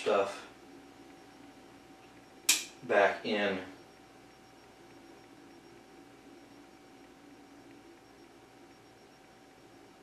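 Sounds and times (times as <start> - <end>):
cutters snapping through branch: 2.5 - 2.7.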